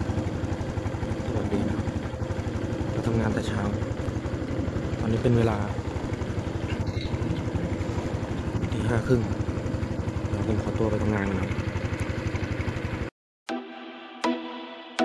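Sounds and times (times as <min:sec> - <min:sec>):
engine idling: 0:00.0 - 0:13.1.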